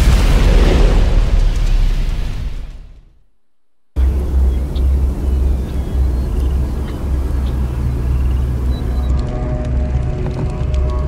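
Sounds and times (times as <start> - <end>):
fiery boom with deep rumble: 0.0 - 3.1.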